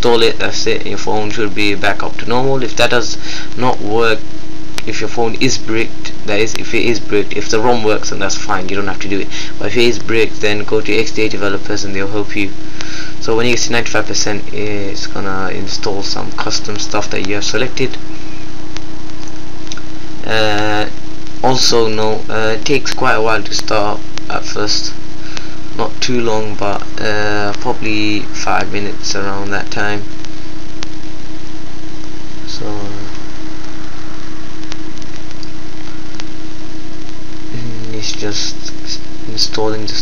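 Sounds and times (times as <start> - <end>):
electrical hum and hiss: 0.0 - 40.0
steady tone: 0.0 - 40.0.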